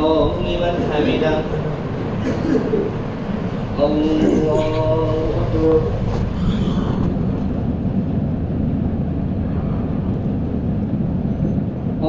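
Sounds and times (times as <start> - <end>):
muffled low rumbling: 0.0 - 12.0.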